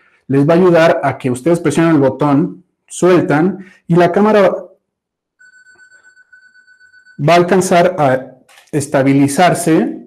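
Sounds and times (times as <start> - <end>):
camera self-timer beep: 5.4 - 7.2.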